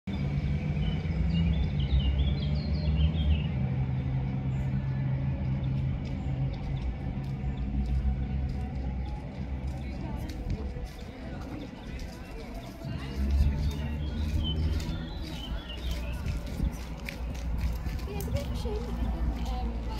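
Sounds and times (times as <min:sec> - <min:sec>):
distant voices: 0:00.1 - 0:19.9.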